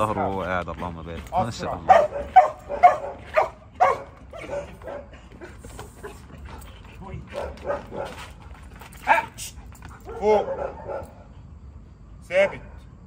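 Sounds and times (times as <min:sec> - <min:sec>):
dog barking: 0:01.3 - 0:05.1, 0:07.3 - 0:08.3, 0:09.0 - 0:09.4, 0:10.0 - 0:11.3.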